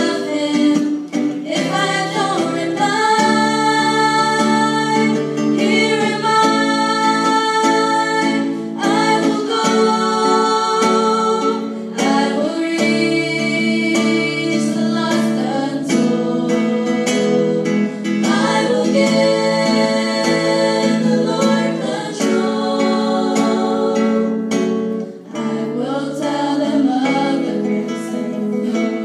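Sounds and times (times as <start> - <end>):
acoustic guitar accompaniment: 0.0 - 29.0
girls singing into microphones: 0.0 - 29.0.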